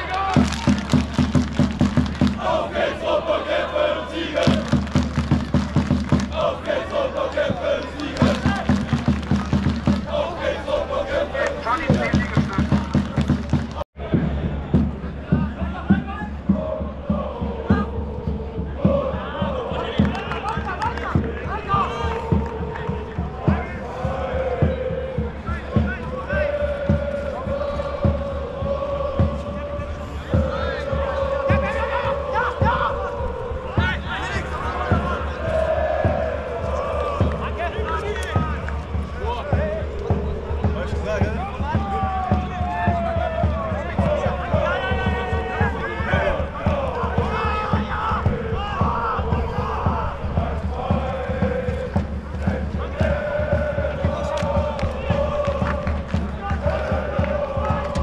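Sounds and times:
crowd singing a chant: 0.0s - 58.0s
steady drum beat: 0.2s - 3.6s, 4.2s - 58.0s.

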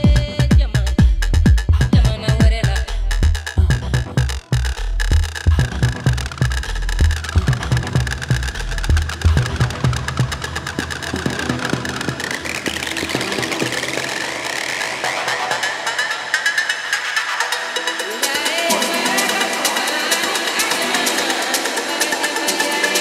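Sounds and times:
kick drum and bassline: 0.0s - 23.0s
rising synth sweep: 3.9s - 18.2s.

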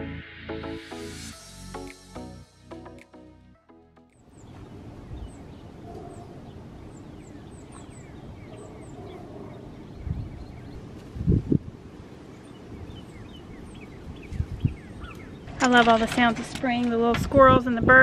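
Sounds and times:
wild birds chirping and singing: 4.3s - 11.0s, 12.2s - 16.5s.

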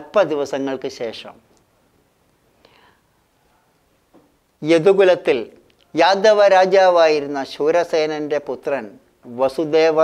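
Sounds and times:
faint breathy sound: 2.5s - 3.8s.

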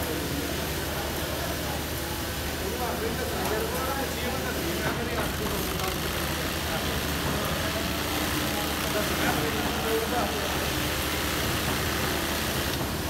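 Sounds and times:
industrial sewing machines humming: 0.0s - 13.0s
people talking in background: 0.0s - 13.0s.

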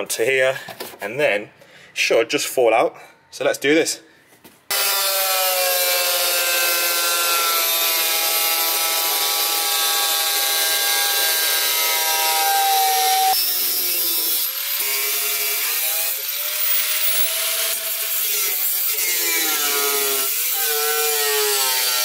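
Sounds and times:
angle grinder cutting metal: 4.7s - 22.0s.

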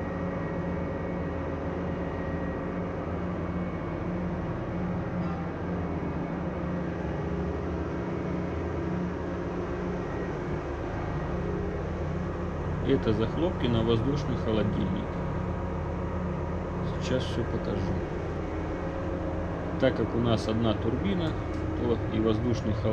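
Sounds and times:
engine-room machinery drone: 0.0s - 22.9s.

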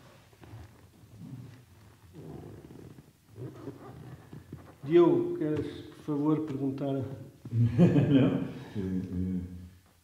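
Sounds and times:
man speaking: 4.8s - 9.7s
man murmuring: 7.5s - 9.8s.

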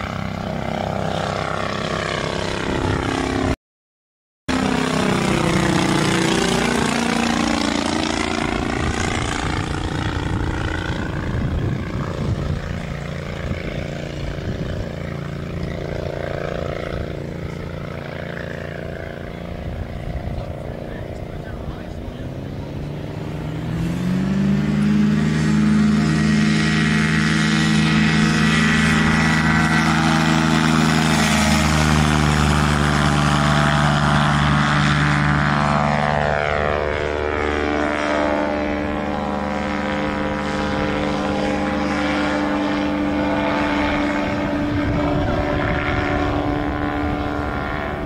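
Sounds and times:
ultralight plane engine passing: 0.0s - 3.6s, 4.5s - 48.0s.

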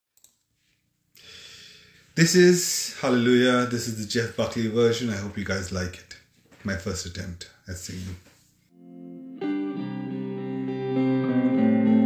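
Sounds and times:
soft room noise hiss: 0.2s - 8.7s.

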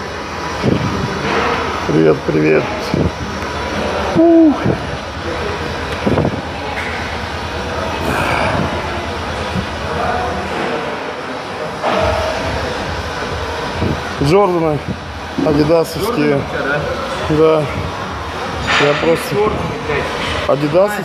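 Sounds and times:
faint indistinct voices: 0.0s - 21.0s
man exclaiming ooh: 4.2s - 4.6s.

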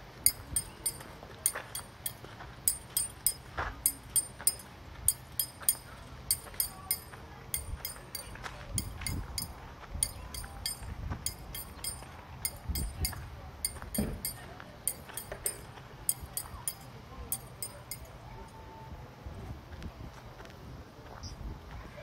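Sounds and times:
faint murmur of voices: 0.3s - 22.0s.

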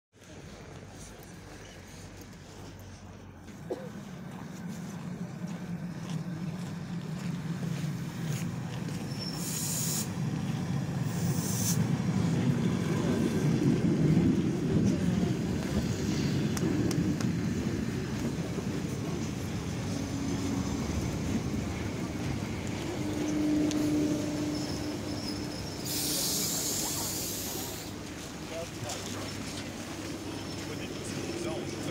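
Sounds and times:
train running rumble: 0.2s - 31.9s
train braking whine: 8.2s - 13.2s, 19.4s - 28.0s
air brake hisses: 9.3s - 10.2s, 11.1s - 11.8s, 25.8s - 27.9s.

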